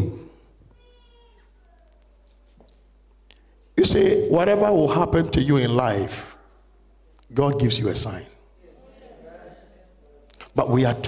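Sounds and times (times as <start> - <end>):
man's voice with room echo: 0.0 - 0.6, 3.7 - 11.0.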